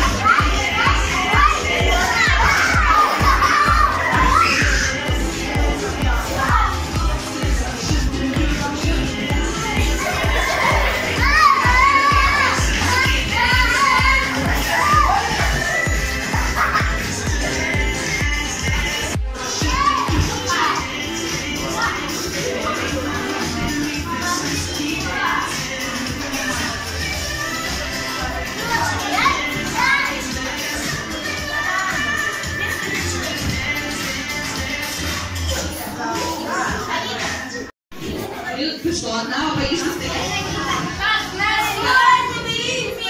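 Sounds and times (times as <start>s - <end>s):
children playing and calling out: 0.0s - 38.6s, 39.8s - 43.0s
pop dance music: 0.0s - 43.0s
child's high voice: 10.6s - 15.6s.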